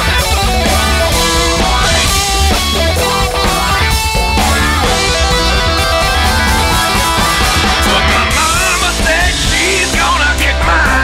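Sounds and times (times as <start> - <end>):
guitar rock music: 0.0 - 11.0.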